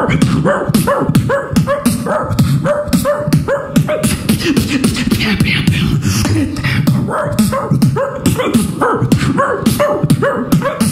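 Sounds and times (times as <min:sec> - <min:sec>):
beatboxing with imitated dog barks: 0:00.0 - 0:10.9.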